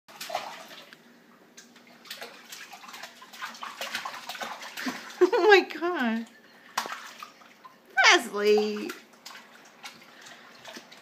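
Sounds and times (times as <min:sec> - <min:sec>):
baby splashing water: 0:00.1 - 0:11.0.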